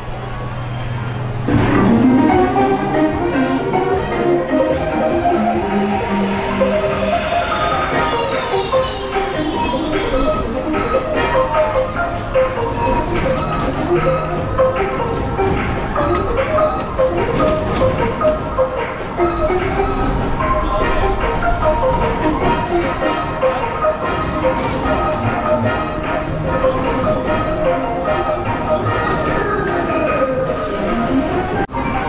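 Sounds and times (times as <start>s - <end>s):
upbeat ride music over loudspeakers: 0.2s - 32.0s.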